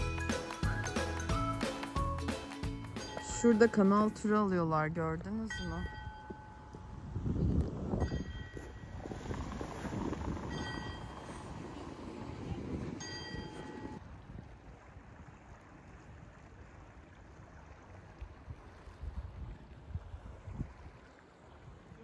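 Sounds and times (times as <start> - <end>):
wind buffeting microphone: 3.3 - 22.0.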